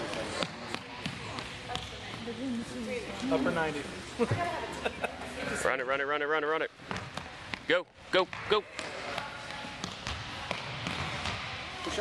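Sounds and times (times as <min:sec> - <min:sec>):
ball bouncing on wooden floor: 0:00.0 - 0:02.3.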